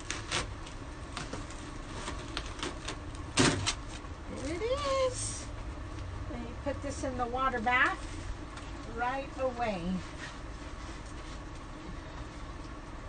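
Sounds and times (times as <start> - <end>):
adhesive transfer peeling crackles: 0.0 - 4.9.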